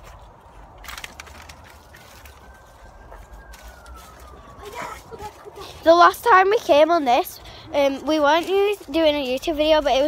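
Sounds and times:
rustling: 0.0s - 7.2s
footsteps outdoors: 0.0s - 10.0s.

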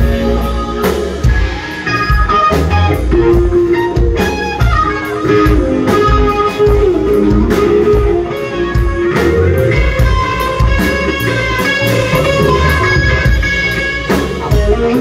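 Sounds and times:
bass guitar: 0.0s - 15.0s
drums: 0.0s - 15.0s
electric guitar lead: 0.0s - 15.0s.

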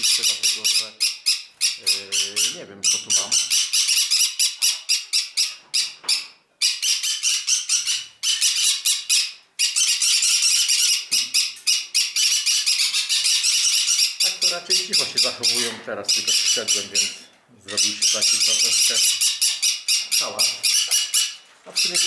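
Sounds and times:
parrots screeching: 0.0s - 22.0s.

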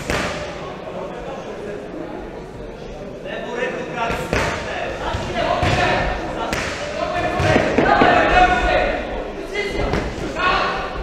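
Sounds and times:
people shouting: 6.9s - 9.1s.

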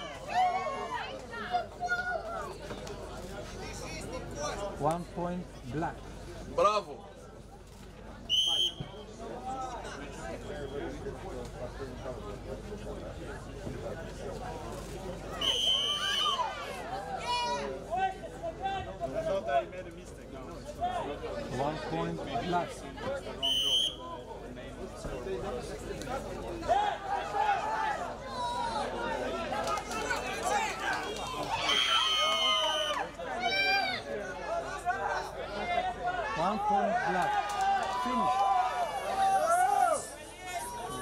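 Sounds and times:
crowd chatter: 0.0s - 41.0s
referee's whistle blast: 8.3s - 9.0s, 15.4s - 16.4s, 23.4s - 24.0s.

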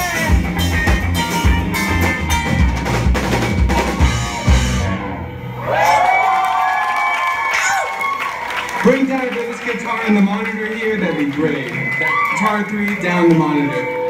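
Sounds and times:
live rock band playing: 0.0s - 6.0s, 8.7s - 14.0s.

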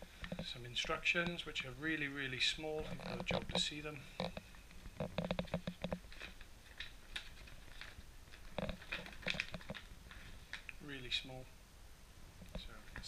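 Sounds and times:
paper crinkling: 5.2s - 10.8s.

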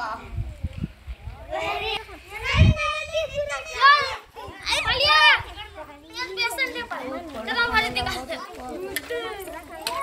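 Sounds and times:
children calling out: 1.4s - 10.0s.

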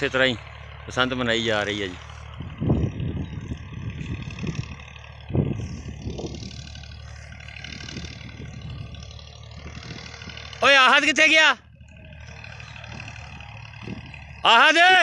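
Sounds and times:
wind buffeting microphone: 2.2s - 10.6s, 12.5s - 14.4s
loud drawn-out shout: 14.4s - 15.0s.

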